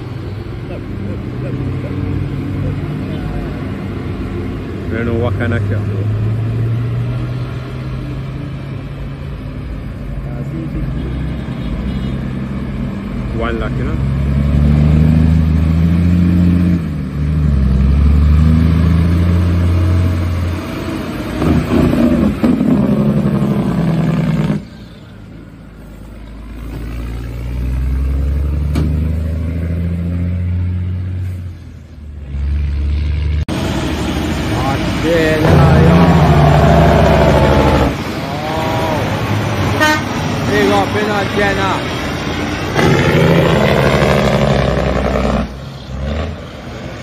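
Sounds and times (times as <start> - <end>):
diesel truck engine shifting gears: 12.2 - 47.0.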